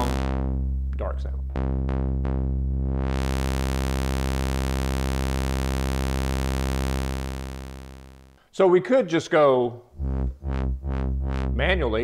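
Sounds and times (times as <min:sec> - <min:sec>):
low synthesizer sawtooth note: 0:00.0 - 0:08.4, 0:09.9 - 0:12.0.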